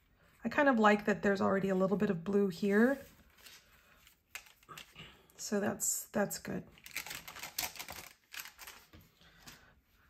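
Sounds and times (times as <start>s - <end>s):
paper clicks and rustles: 3.3s - 4.9s, 6.8s - 9.6s.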